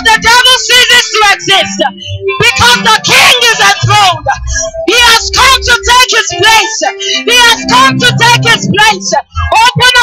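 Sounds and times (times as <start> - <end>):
woman singing gospel song: 0.0 - 10.0.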